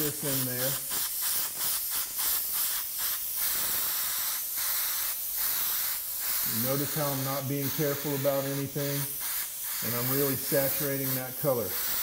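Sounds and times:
airbrush spraying hiss: 0:00.0 - 0:12.0.

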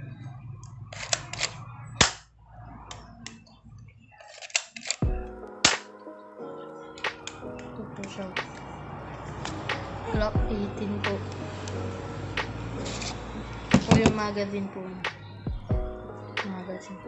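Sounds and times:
plastic toy pistol clicks: 0:04.3 - 0:05.0, 0:05.6 - 0:05.9
background music with held chords: 0:05.0 - 0:17.0.

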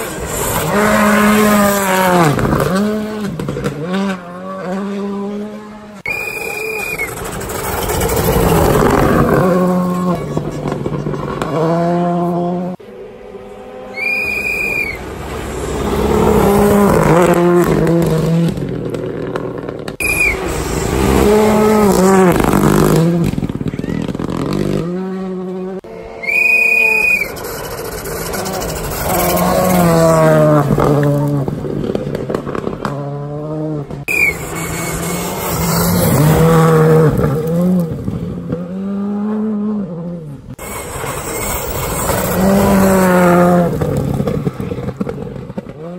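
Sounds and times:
rally car engines revving past: 0:00.0 - 0:45.9.

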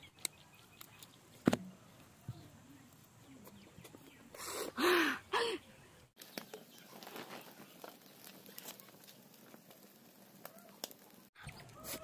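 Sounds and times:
woman breathing out: 0:04.4 - 0:05.6
woman's gasp-like exclamations: 0:04.7 - 0:05.6.

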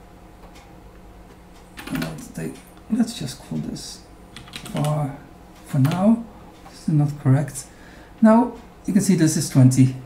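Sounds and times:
faint low hum: 0:00.0 - 0:10.0
computer keyboard keys clicking: 0:01.8 - 0:02.3, 0:04.3 - 0:05.0, 0:05.8 - 0:06.1.

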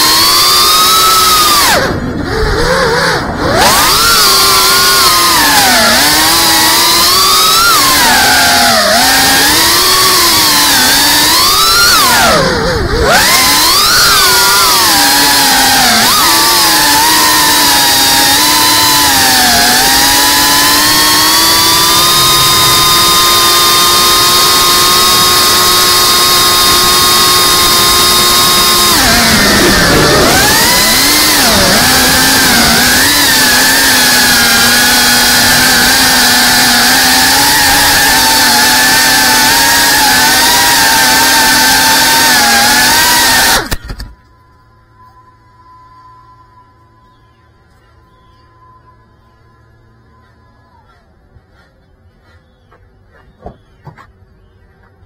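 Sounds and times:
quadcopter motors whining: 0:00.0 - 0:52.6.

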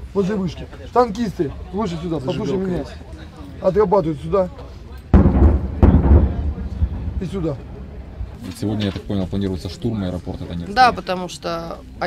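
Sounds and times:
heavy weapon booms: 0:05.2 - 0:09.1.

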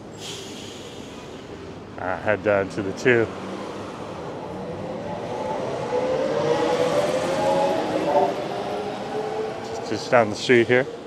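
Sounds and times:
street traffic noise: 0:00.0 - 0:11.0.

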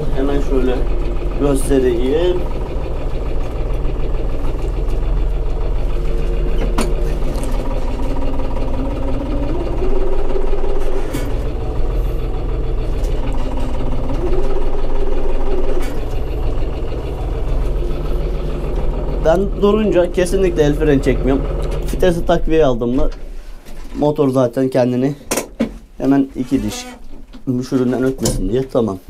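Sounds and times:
tractor diesel engine running: 0:00.0 - 0:26.2.

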